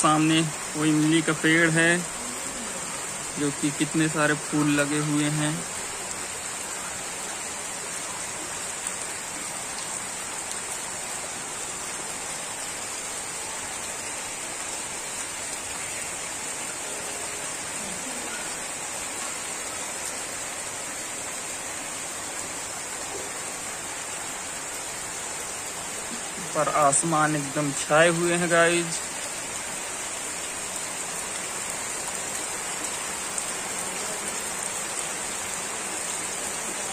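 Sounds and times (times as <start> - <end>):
heavy rain: 0.0 - 36.9.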